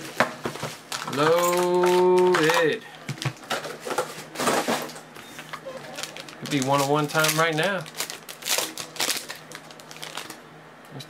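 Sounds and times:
foil wrapper crinkling: 0.8 - 2.7, 5.7 - 10.4.

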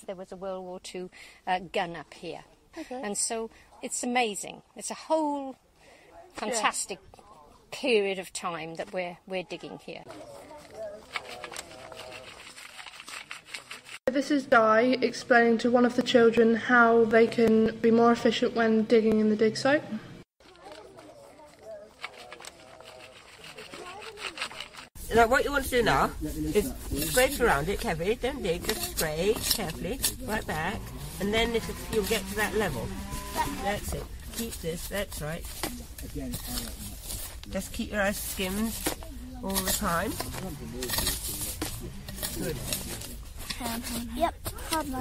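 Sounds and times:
rustling: 10.0 - 14.0, 20.4 - 45.0.

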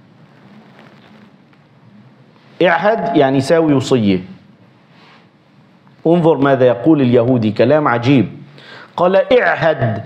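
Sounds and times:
faint room noise hiss: 0.0 - 10.0.

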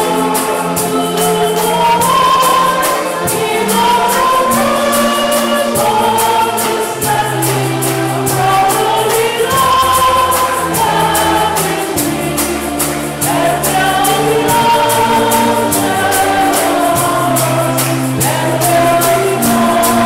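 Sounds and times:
choir singing a hymn: 0.0 - 20.0
high percussion beat: 0.0 - 20.0
instrumental accompaniment: 0.0 - 20.0.

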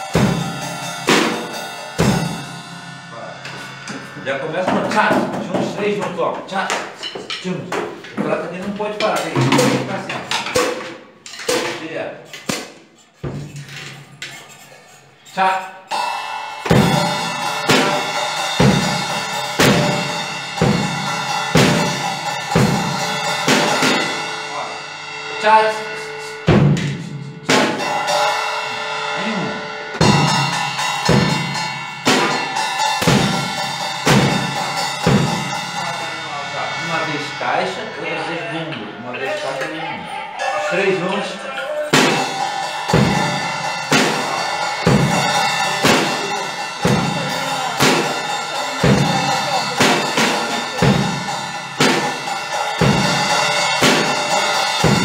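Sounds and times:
snare drum: 0.0 - 1.5, 9.0 - 13.8, 16.7 - 24.2, 26.5 - 28.2, 30.0 - 36.0, 41.9 - 55.0
cymbals ringing: 0.0 - 55.0
bass drum: 30.0 - 39.1, 41.9 - 55.0.

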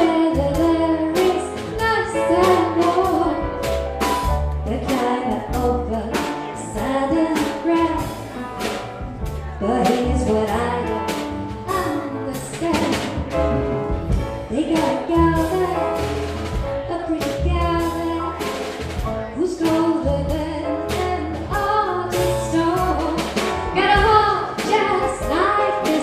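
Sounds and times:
woman singing: 0.0 - 3.6, 4.6 - 8.5, 9.4 - 13.2, 14.4 - 16.0, 16.8 - 18.6, 19.2 - 26.0
jazz combo playing: 0.0 - 26.0.

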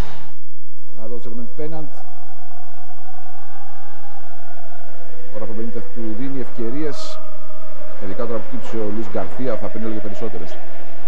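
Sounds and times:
stadium crowd voices: 7.8 - 11.0.

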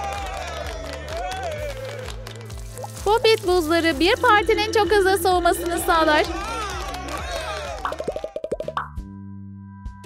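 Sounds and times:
cartoon plop sound effects: 7.9 - 9.0.

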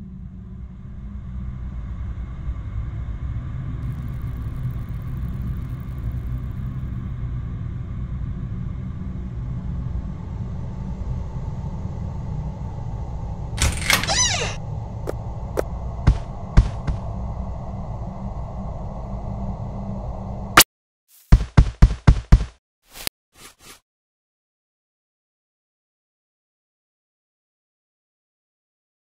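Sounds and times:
low steady rumble: 0.0 - 20.6.

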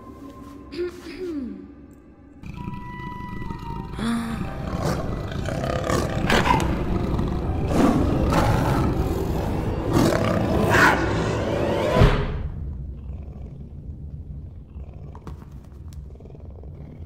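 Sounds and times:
dramatic music: 0.0 - 12.9.

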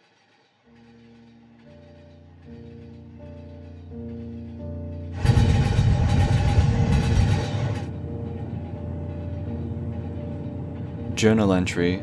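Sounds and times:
train rumbling on rails: 0.0 - 12.0.

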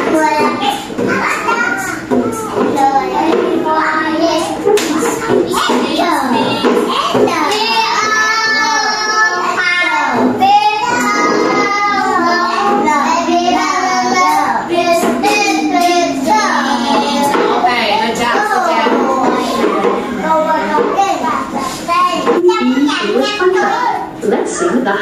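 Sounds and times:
children singing together: 0.0 - 22.4.

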